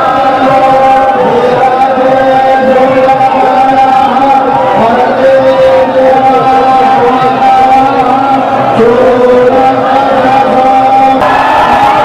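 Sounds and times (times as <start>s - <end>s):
crowd noise: 0.0s - 12.0s
loud chanting voices: 0.0s - 12.0s.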